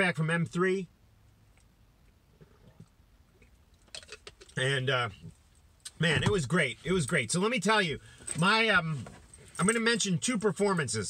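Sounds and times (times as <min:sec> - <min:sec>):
man sipping and swallowing: 0:02.0 - 0:04.6.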